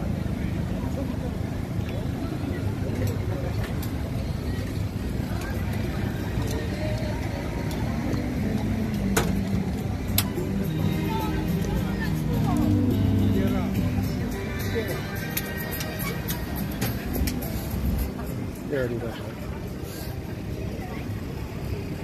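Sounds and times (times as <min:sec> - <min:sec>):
faint music: 0:00.0 - 0:22.0
traffic rumble: 0:00.0 - 0:22.0
background voices: 0:00.9 - 0:21.4.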